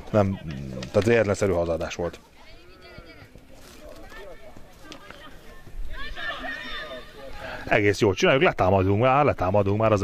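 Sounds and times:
faint high-pitched shouts: 0:02.4 - 0:07.7.

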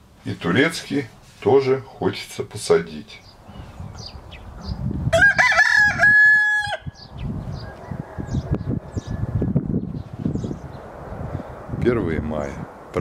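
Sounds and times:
rooster crowing: 0:05.1 - 0:09.6.

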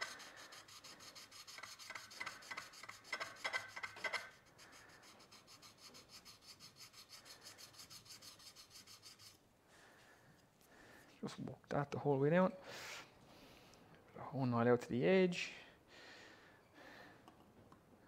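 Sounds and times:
chisel scraping on abrasive sheet: 0:00.0 - 0:09.4.

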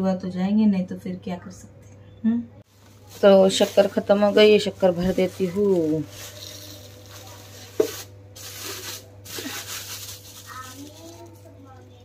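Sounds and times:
plastic bag rustling: 0:02.7 - 0:11.8
sugar granules pouring: 0:02.9 - 0:11.4.

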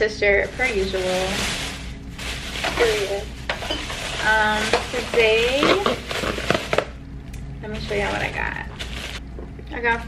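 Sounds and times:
plastic bag rustling and crinkling: 0:00.0 - 0:07.0, 0:07.6 - 0:09.2.

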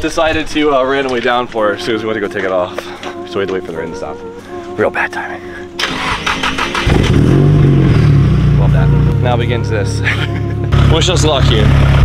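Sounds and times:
car engine starting and idling: 0:05.7 - 0:12.0.

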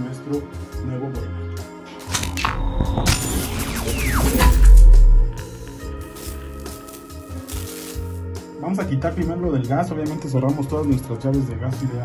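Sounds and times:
building noise with falling tone: 0:02.4 - 0:05.6.

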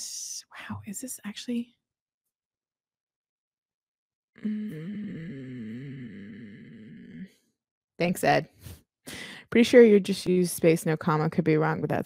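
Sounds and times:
woman humming: 0:04.4 - 0:07.4.

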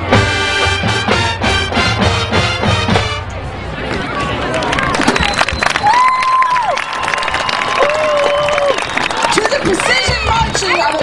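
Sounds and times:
crowd applauding and cheering: 0:04.0 - 0:11.0
long held shouts: 0:05.8 - 0:08.8.

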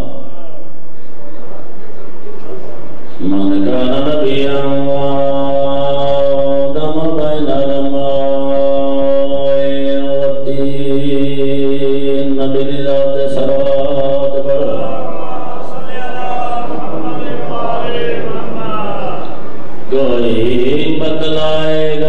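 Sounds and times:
man chanting held notes: 0:00.0 - 0:22.0.

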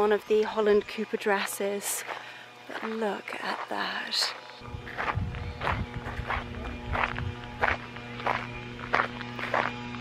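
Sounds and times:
footsteps on paved path: 0:00.0 - 0:10.0
steady hum: 0:00.0 - 0:10.0.

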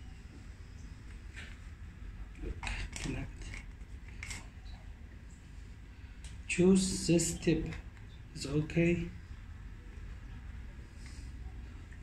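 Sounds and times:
plastic parts scraping and clicking: 0:02.4 - 0:04.5.

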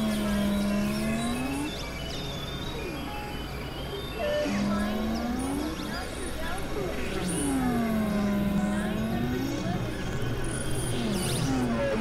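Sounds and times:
synthesizer tone dipping and rising: 0:00.0 - 0:01.7, 0:04.4 - 0:05.9
low synthesizer drone: 0:00.0 - 0:01.9, 0:04.2 - 0:12.0.

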